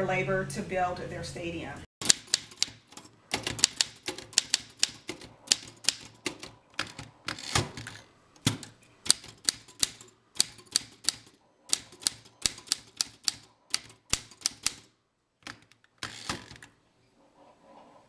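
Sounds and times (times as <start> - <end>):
typewriter keys clicking: 2.0 - 16.6
typewriter carriage return rattle: 2.0 - 16.7.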